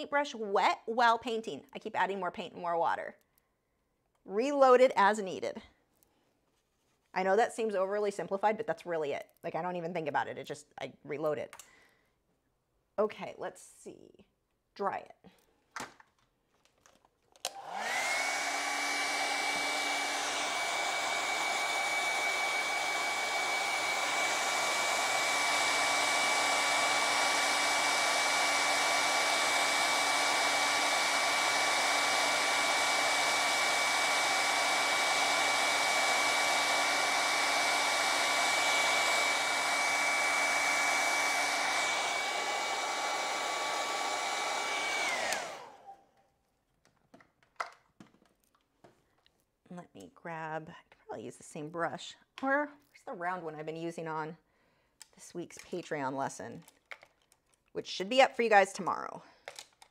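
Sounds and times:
hair dryer whining: 0:17.4 - 0:46.1.

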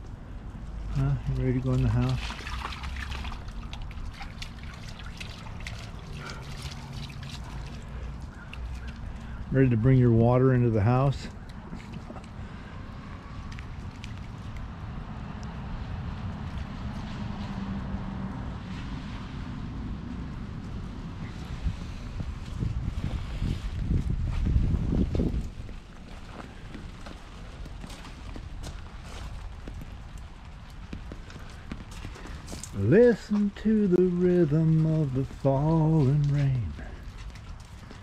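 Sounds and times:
low microphone rumble: 0:18.3 - 0:27.0
footsteps on soggy ground: 0:22.4 - 0:38.0.

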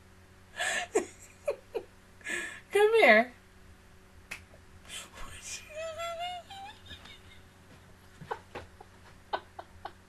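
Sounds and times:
woman's voice sliding down: 0:04.9 - 0:07.3.

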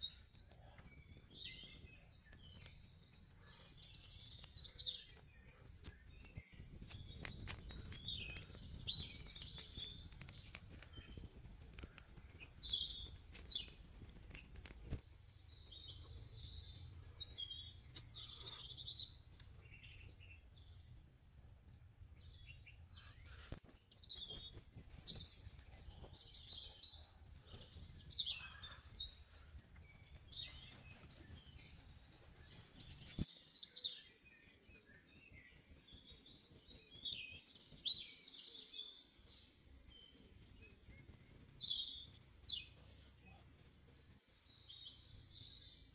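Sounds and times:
small birds chirping: 0:00.0 - 0:45.9.

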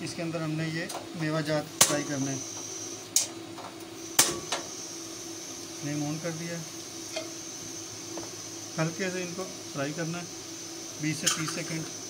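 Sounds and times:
steady background hum: 0:00.0 - 0:12.0.

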